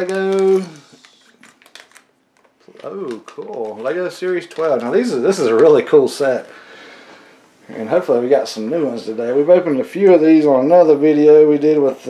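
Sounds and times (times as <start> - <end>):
plastic pieces clicking on table: 0.0 - 5.1
plastic wrapper crinkling: 0.0 - 6.6.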